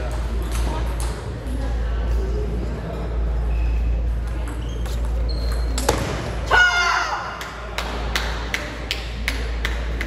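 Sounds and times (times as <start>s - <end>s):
ball clicks and bounces: 4.2s - 6.2s.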